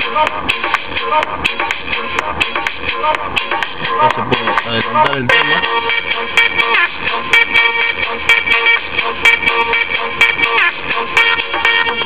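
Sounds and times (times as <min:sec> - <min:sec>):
electronic music with synth chords: 0:00.0 - 0:12.0.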